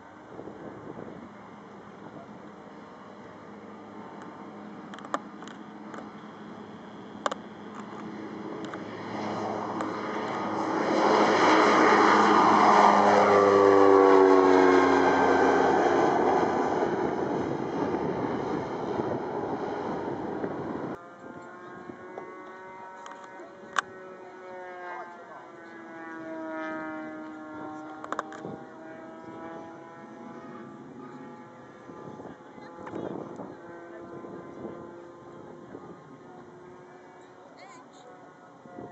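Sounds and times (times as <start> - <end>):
faint aircraft engine: 0.0 - 38.9
turboprop plane taking off: 0.0 - 38.9.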